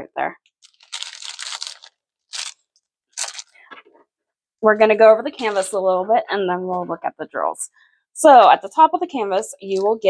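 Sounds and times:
plastic bag crinkling: 0.5s - 3.8s.

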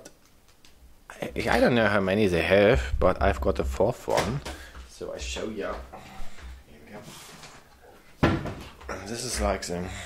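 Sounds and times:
sudden thud: 8.2s - 8.7s.

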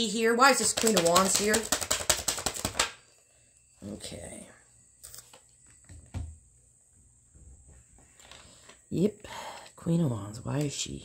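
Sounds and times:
cards being shuffled: 0.5s - 3.0s.

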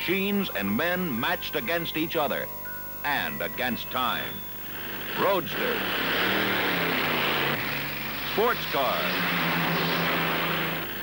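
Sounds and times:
racing car engine running: 4.1s - 11.0s.

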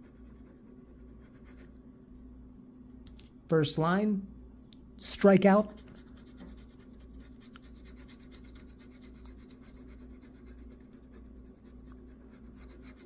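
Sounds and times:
scratching lottery ticket coating: 5.6s - 13.0s.

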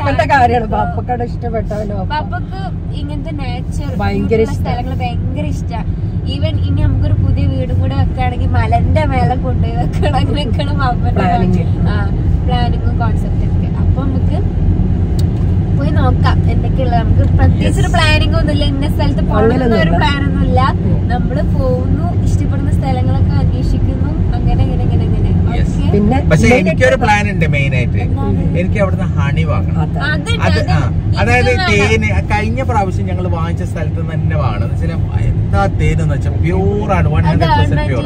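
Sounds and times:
people talking: 0.0s - 14.4s, 15.8s - 38.0s
car road and engine rumble: 0.0s - 38.0s.

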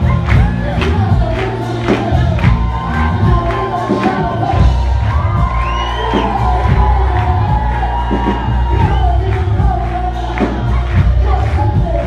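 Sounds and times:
bass guitar: 0.0s - 12.0s
steady drum beat: 0.0s - 12.0s
voices singing together: 0.0s - 12.0s.

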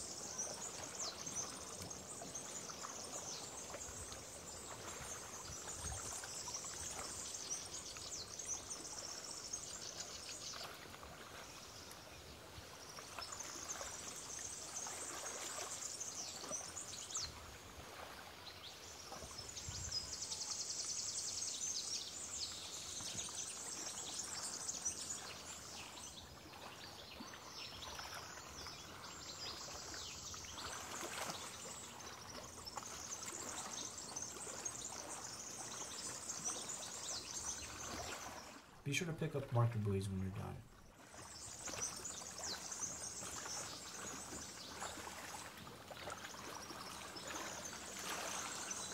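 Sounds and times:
faint steady hiss: 28.2s - 45.5s.

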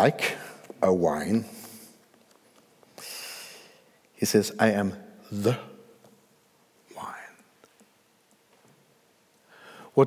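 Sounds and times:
man whispering softly: 6.9s - 7.6s.

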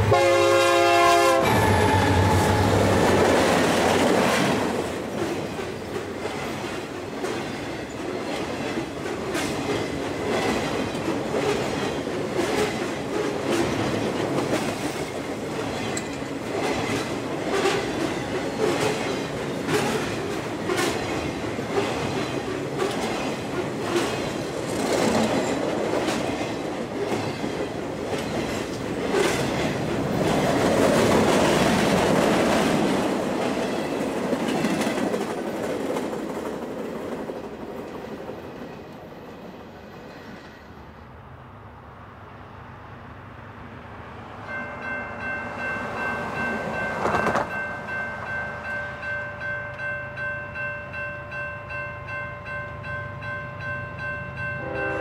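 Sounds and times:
railroad cars rumbling past: 0.0s - 55.0s.

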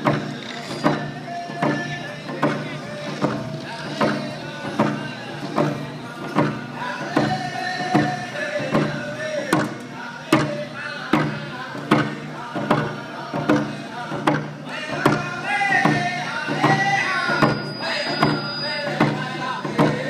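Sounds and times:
frame hand drums beating: 0.0s - 20.0s
men singing: 0.0s - 20.0s.

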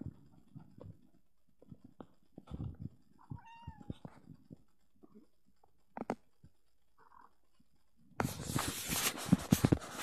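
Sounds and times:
cat meowing: 3.3s - 3.9s.

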